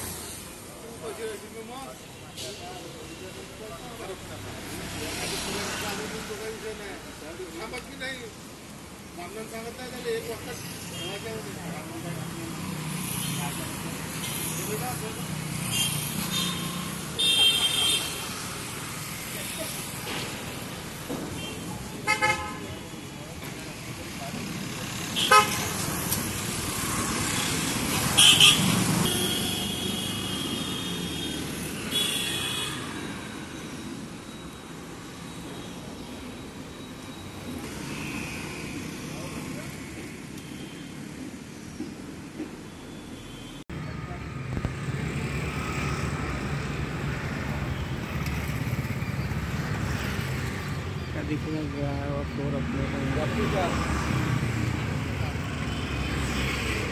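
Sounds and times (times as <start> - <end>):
steady traffic hum: 0.0 - 56.9
vehicle horns honking: 15.7 - 18.2, 21.4 - 22.7, 25.2 - 25.7, 28.0 - 32.9.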